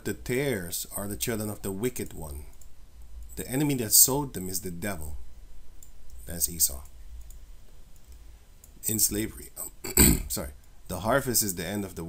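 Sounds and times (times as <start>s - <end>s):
low steady hum: 0.0s - 12.0s
computer mouse clicks: 6.8s - 8.8s.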